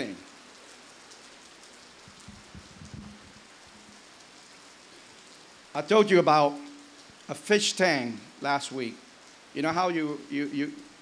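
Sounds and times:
faint background hiss: 0.0s - 11.0s
soft low microphone thumps: 2.1s - 3.9s.

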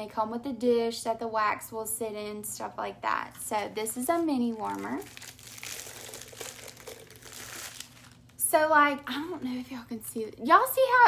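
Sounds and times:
plastic wrapping crinkling: 3.9s - 8.4s.

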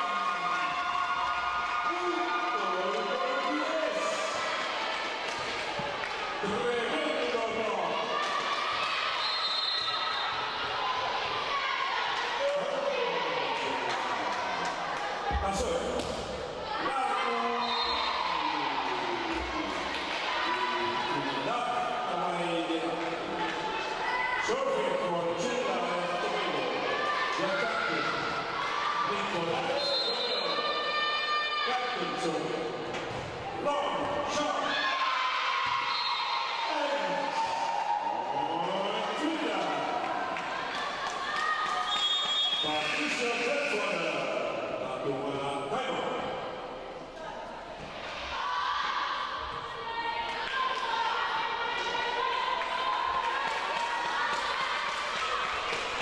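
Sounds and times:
shrill whistle blasts: 9.2s - 10.4s, 35.8s - 36.4s, 41.8s - 43.1s.

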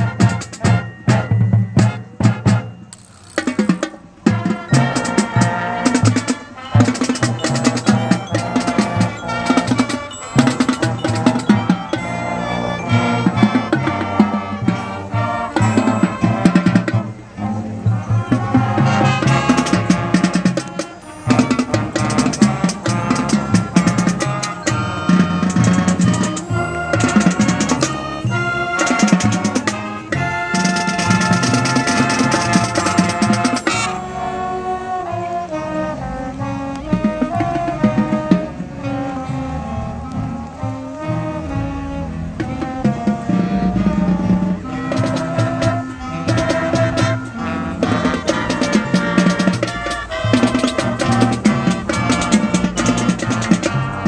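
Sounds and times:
brass and saxophones: 0.0s - 54.0s
drumline playing: 0.0s - 54.0s.

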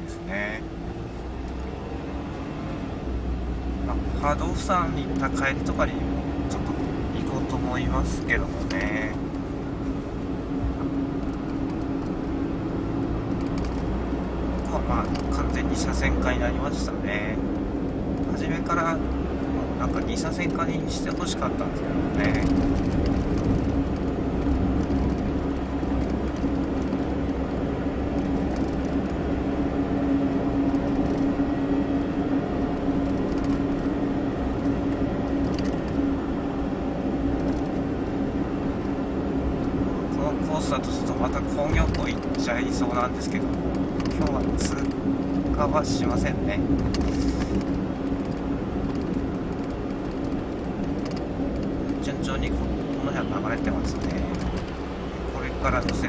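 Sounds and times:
car engine and tyre drone: 0.0s - 56.0s
low hum: 0.0s - 56.0s.

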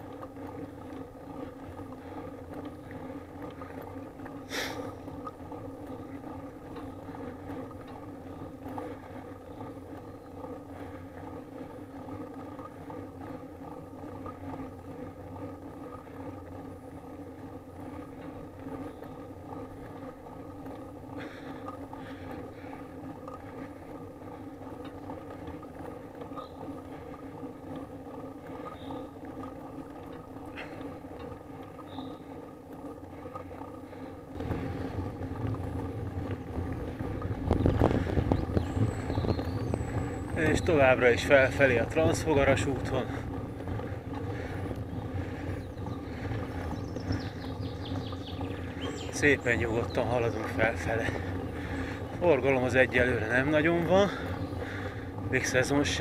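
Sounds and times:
bicycle road noise hum: 0.0s - 56.0s
wind buffeting microphone: 34.3s - 56.0s.

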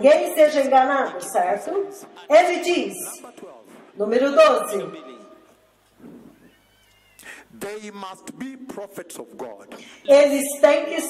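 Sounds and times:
man speaking through microphone: 4.4s - 5.5s.

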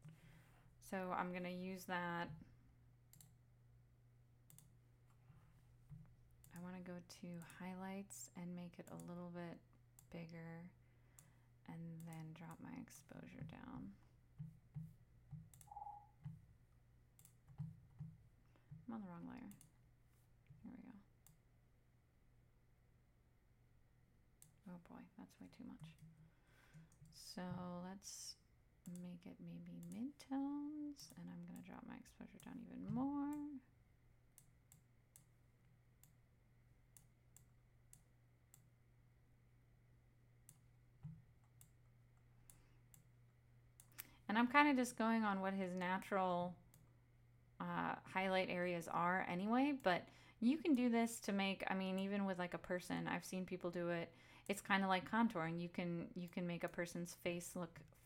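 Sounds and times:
low steady hum: 0.0s - 58.0s
computer mouse clicks: 3.1s - 3.4s, 4.5s - 5.2s, 5.8s - 6.7s, 7.3s - 7.6s, 8.8s - 9.2s, 12.0s - 12.6s, 14.4s - 16.4s, 17.2s - 18.8s, 19.4s - 19.8s, 25.6s - 27.2s, 28.8s - 30.1s, 34.3s - 35.4s, 40.4s - 43.1s.

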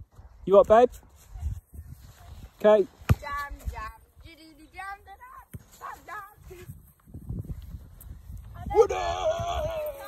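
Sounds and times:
football kick thud: 3.0s - 3.4s.

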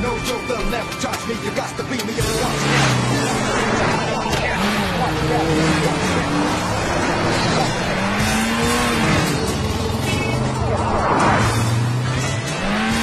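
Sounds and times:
vehicle engines revving: 0.0s - 13.0s.

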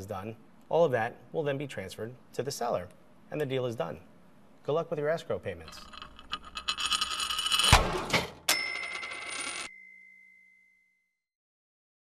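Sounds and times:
bright ringing sounds: 8.5s - 11.2s.

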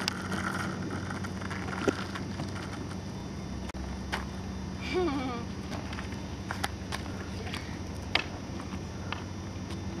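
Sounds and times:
skateboard clicks and knocks: 0.0s - 3.2s
steady low hum: 0.0s - 10.0s.

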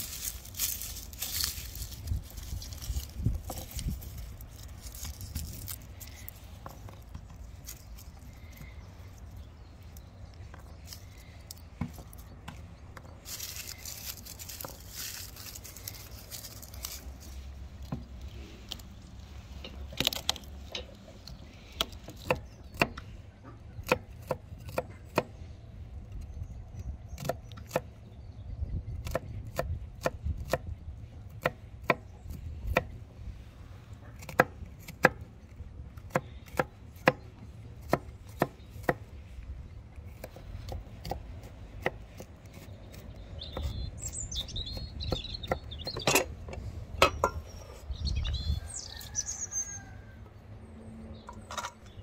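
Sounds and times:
papery garlic skins rustling: 0.0s - 21.7s.

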